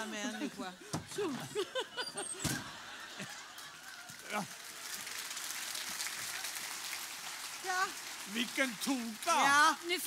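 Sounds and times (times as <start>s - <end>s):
audience applauding: 2.8s - 10.0s.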